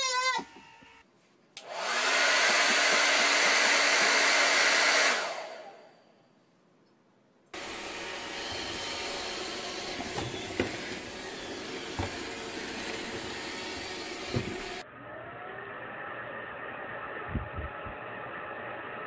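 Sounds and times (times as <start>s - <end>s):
appliance fan motor rushing air: 1.6s - 5.8s, 7.6s - 19.0s
robot vacuum whirring: 1.6s - 5.8s, 7.6s - 14.8s.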